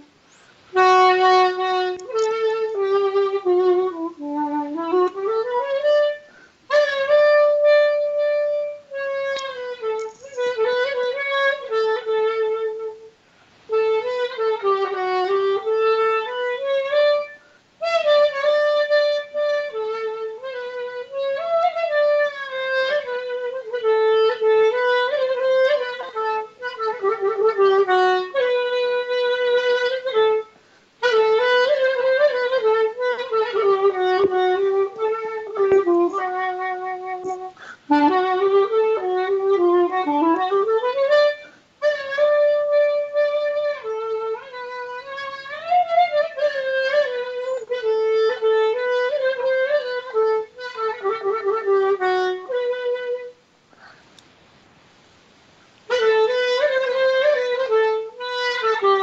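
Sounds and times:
solo clarinet melody: 0:00.0 - 0:54.0, 0:55.7 - 0:59.0.

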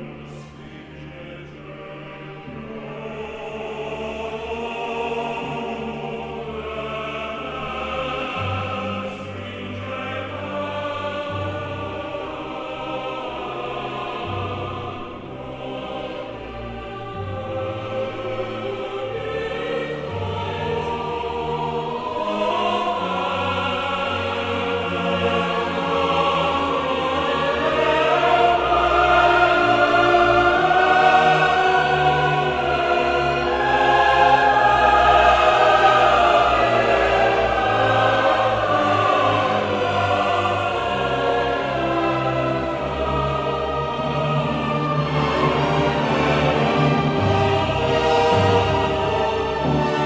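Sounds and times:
opera chorus singing: 0:00.0 - 0:50.0
symphony orchestra playing: 0:00.0 - 0:50.0.

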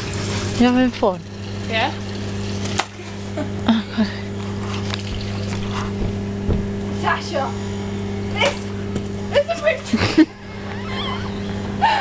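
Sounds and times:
water pouring: 0:00.0 - 0:03.6, 0:04.4 - 0:05.7
steady low hum: 0:00.0 - 0:12.0
woman crying out and squealing: 0:10.6 - 0:12.0.

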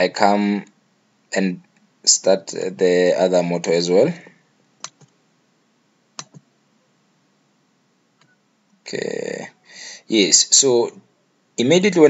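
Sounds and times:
computer mouse clicks: 0:04.8 - 0:05.2, 0:06.2 - 0:06.5.

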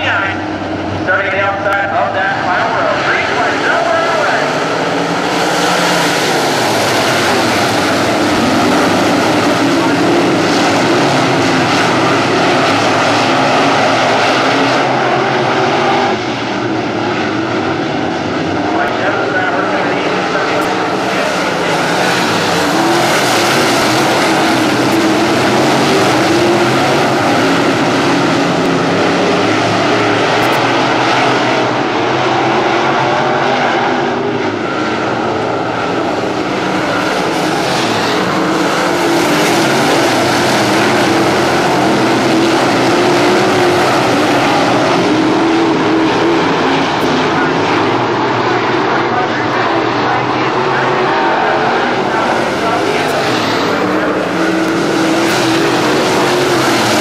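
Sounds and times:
race car engines roaring: 0:00.0 - 0:57.0.

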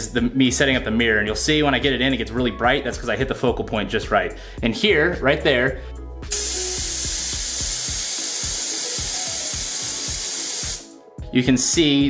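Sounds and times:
compressed air hissing: 0:06.3 - 0:11.0.

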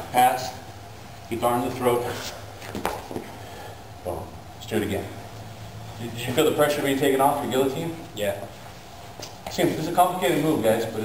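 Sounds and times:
steady low hum: 0:00.0 - 0:11.0
bodies shifting on mat: 0:02.1 - 0:03.4.

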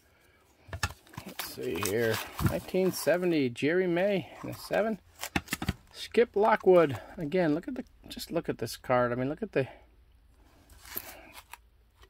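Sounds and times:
faint plastic rustle: 0:00.5 - 0:03.3.

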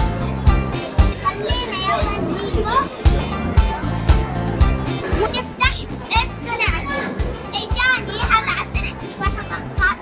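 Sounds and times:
background music with steady beat: 0:00.0 - 0:10.0
children's voices: 0:01.1 - 0:03.9, 0:05.0 - 0:10.0.

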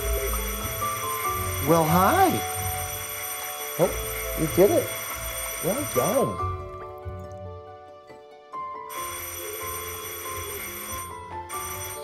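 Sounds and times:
electric buzzer ringing: 0:00.0 - 0:06.4, 0:08.9 - 0:12.0
background music: 0:00.0 - 0:12.0.

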